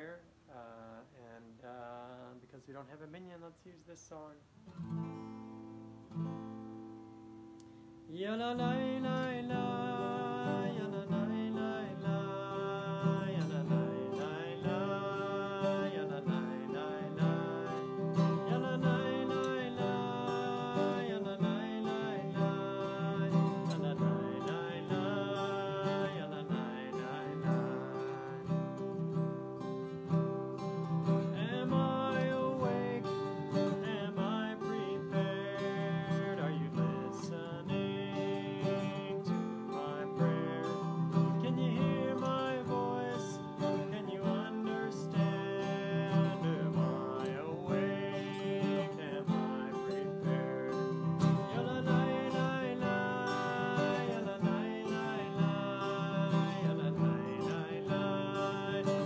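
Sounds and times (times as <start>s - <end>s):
man singing wordless melody: 0.0s - 4.6s, 7.6s - 59.0s
strummed acoustic guitar: 4.6s - 59.0s.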